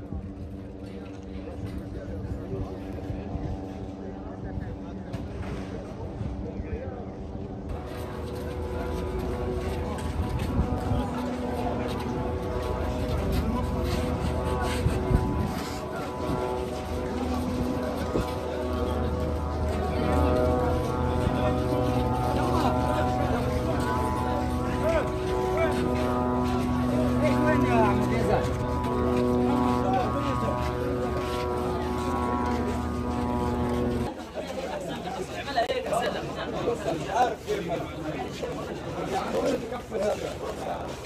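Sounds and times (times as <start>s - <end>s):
engine drone: 0.0s - 34.3s
crowd voices: 0.0s - 41.0s
people talking: 0.0s - 41.0s
motor humming: 7.6s - 34.1s
men talking and calling out: 8.2s - 41.0s.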